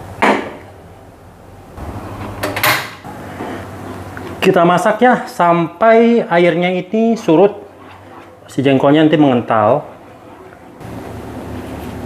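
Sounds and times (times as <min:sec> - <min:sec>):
spatula stirring batter in pan: 0:06.4 - 0:12.0.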